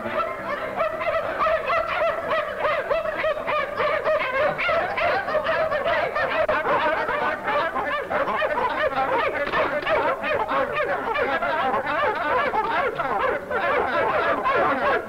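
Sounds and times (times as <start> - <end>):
young men laughing: 0.0 - 15.0.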